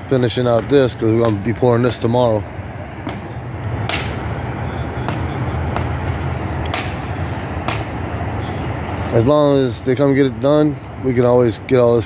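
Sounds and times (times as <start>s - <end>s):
engine idling with low hum: 0.0s - 12.0s.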